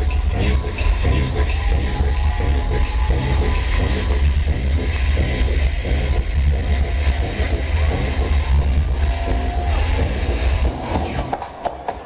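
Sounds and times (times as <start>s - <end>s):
electro dance music: 0.0s - 12.0s.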